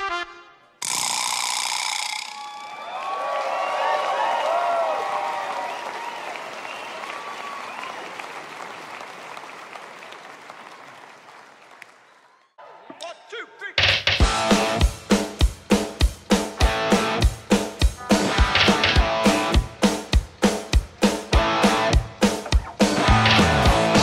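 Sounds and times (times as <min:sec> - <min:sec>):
audience applauding and cheering: 0:02.3 - 0:12.8
shouts in crowd: 0:02.4 - 0:08.1.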